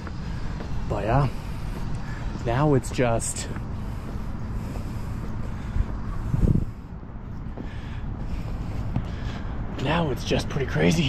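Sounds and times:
road traffic rumble: 0.0s - 11.0s
wind buffeting microphone: 0.0s - 11.0s.

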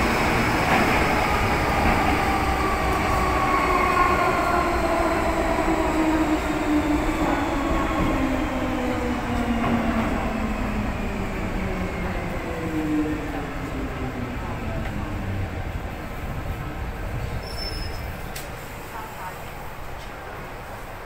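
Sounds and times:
wheels rumbling on rail: 0.0s - 21.0s.

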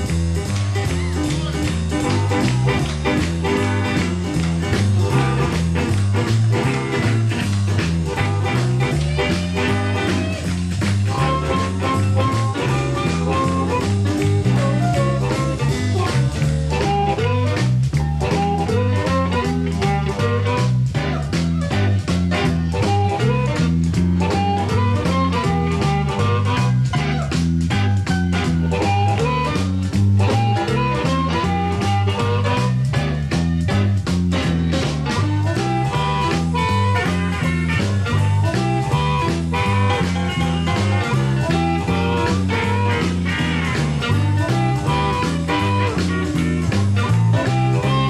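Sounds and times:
bass line: 0.0s - 48.0s
drums: 0.0s - 48.0s
electric guitar: 0.0s - 48.0s.

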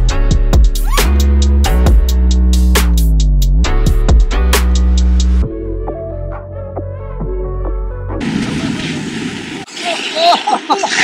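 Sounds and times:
music: 0.0s - 8.2s
wind rushing over microphone: 8.2s - 9.7s.

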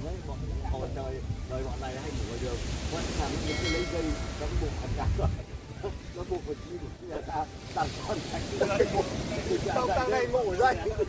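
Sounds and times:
men talking: 0.0s - 11.0s
wind buffeting microphone: 0.0s - 11.0s.

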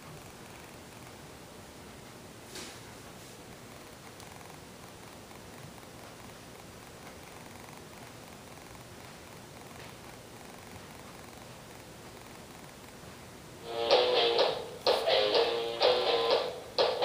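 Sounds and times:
faint room tone hiss: 0.0s - 17.0s.

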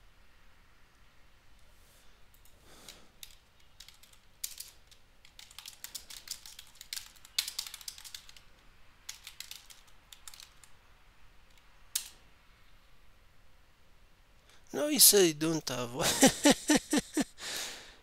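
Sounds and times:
computer keyboard key clicks: 3.2s - 8.4s, 9.1s - 10.7s.

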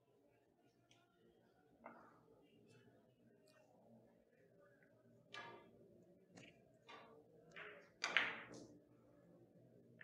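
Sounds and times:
billiard balls colliding: 6.9s - 8.7s.

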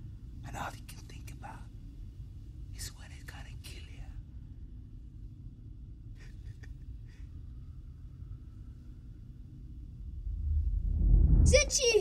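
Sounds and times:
low steady rumble: 0.0s - 12.0s
man whispering: 0.4s - 1.8s, 2.7s - 4.3s.

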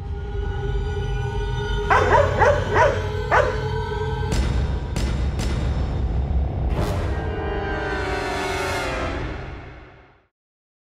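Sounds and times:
background music with low drone: 0.0s - 10.3s
dog barking: 1.9s - 3.8s.

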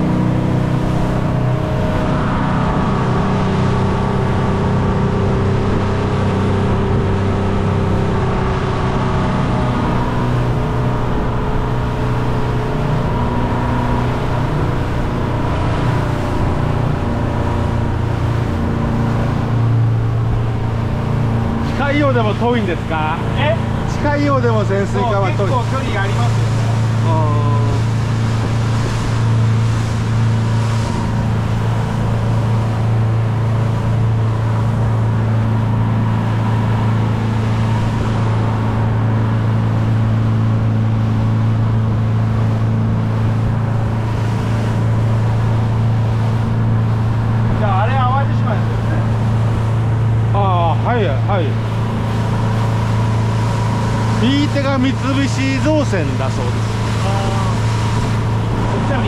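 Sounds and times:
motorboat engine droning: 0.0s - 59.0s
wind and water rushing: 0.0s - 59.0s
voices: 21.6s - 27.9s, 54.2s - 57.8s.

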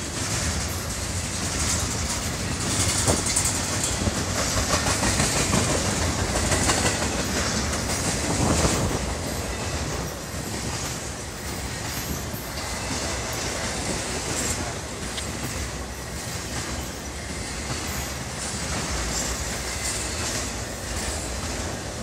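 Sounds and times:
clickety-clack over rail joints: 0.0s - 22.0s
steel wheels rumbling on rail: 0.0s - 22.0s.

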